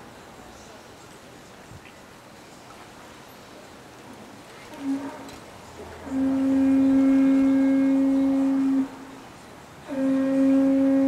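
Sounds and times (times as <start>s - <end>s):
long steady held note: 6.0s - 9.2s, 9.8s - 11.0s.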